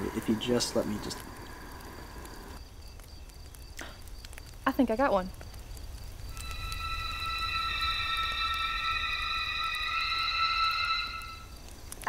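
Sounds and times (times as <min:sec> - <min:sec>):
high electronic tones chord: 0:06.4 - 0:11.6.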